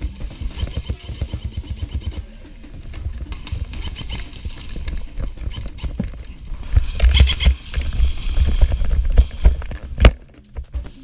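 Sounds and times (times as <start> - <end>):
running footsteps on concrete: 0.0 - 11.0.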